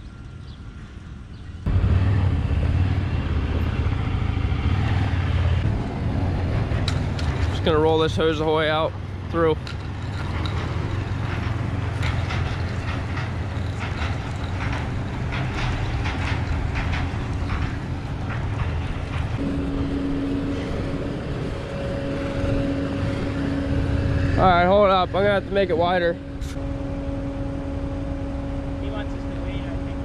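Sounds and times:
utility vehicle engine running: 0.0s - 30.0s
gravel crunching: 6.4s - 26.6s
steady hum: 11.1s - 30.0s.

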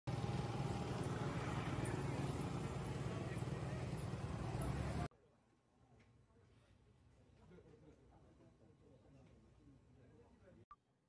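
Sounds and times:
motor scooter engine running: 0.1s - 5.1s
traffic din: 0.1s - 5.1s
people's voices: 0.8s - 5.1s.

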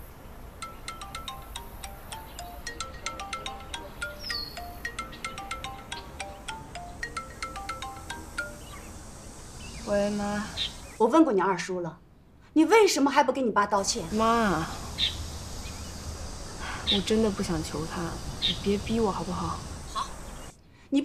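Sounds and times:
mobile phone melodic ringtone: 0.6s - 8.9s.

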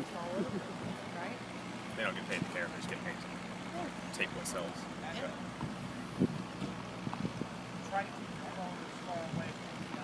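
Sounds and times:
distant voices talking: 0.0s - 10.0s
steady low hum: 0.0s - 10.0s.

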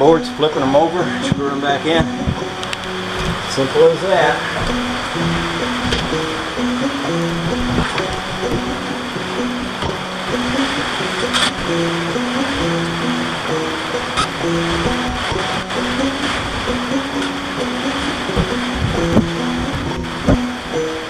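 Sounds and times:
background music with held notes: 0.0s - 21.0s.

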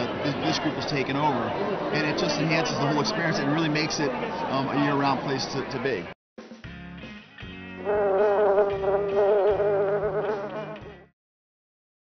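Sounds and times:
bee buzzing: 7.9s - 10.8s.

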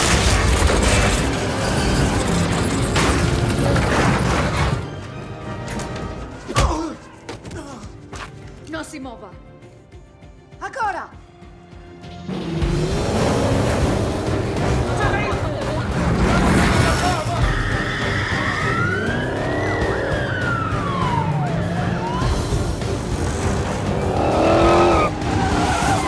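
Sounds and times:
film score music: 0.0s - 26.0s
car engines running hard: 12.2s - 17.0s, 18.1s - 26.0s
police siren: 17.8s - 23.0s.

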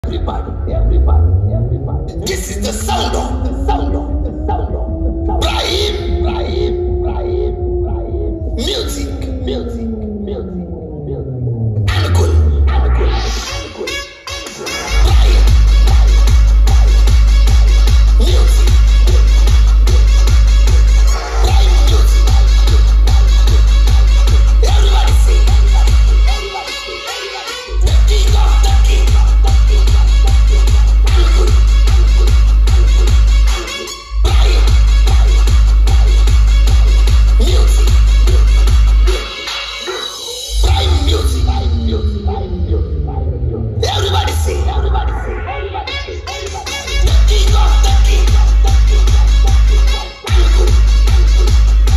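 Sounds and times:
heavy deep bass: 0.0s - 13.9s, 14.9s - 26.7s, 27.7s - 33.6s, 34.2s - 39.3s, 40.5s - 51.9s
electronic dance music: 0.0s - 51.9s
sliding pitch sweeps: 0.6s - 13.9s, 40.6s - 46.4s.

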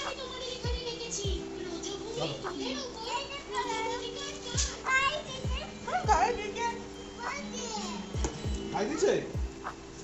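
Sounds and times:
children calling and chattering: 0.0s - 9.8s.

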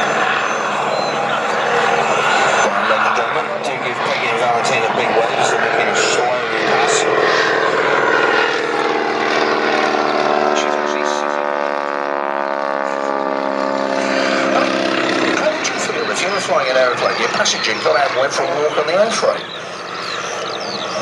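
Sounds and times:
biplane engine droning: 0.0s - 21.0s.

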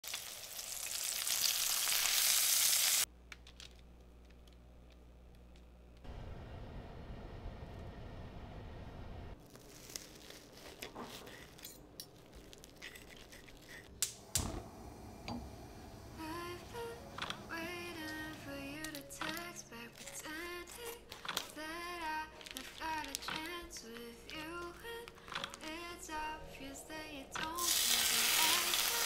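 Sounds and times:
bacon sizzling in a skillet: 0.0s - 3.1s, 27.6s - 29.0s.

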